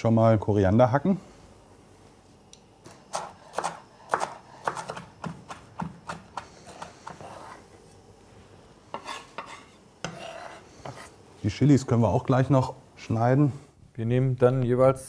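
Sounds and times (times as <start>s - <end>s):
knife chopping on wooden board: 2.9s - 7.6s.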